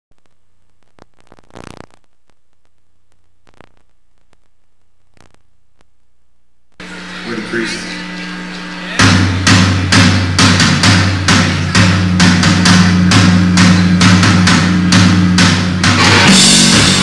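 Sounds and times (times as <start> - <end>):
steady electric hum: 0.1 - 17.0
drum kit hits: 6.8 - 17.0.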